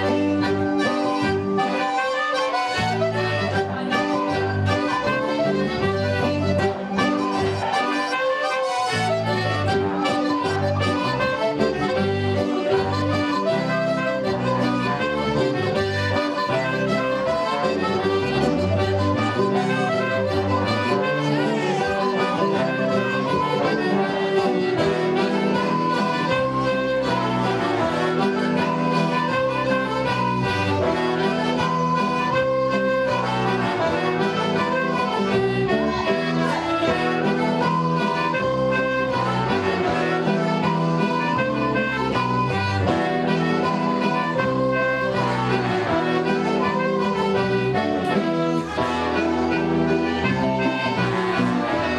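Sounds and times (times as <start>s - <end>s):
button accordion: 0.0s - 51.9s
electric guitar: 0.0s - 51.9s
fiddle: 0.0s - 51.9s.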